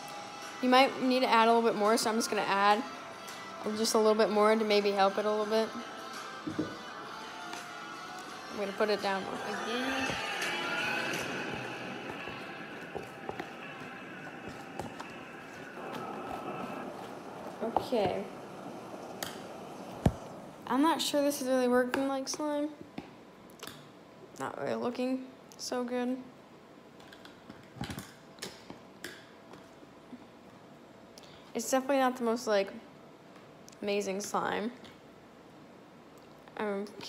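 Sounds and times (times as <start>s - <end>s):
background music: 0.0s - 21.1s.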